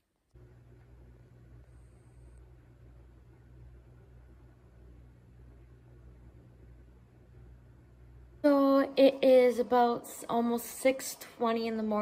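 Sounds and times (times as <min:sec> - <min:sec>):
quiet hiss: 0:00.0 - 0:12.0
low hum: 0:00.2 - 0:12.0.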